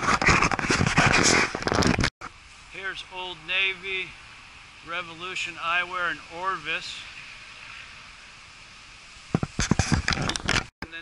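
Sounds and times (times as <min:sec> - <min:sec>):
road traffic hiss: 0:02.2 - 0:11.0.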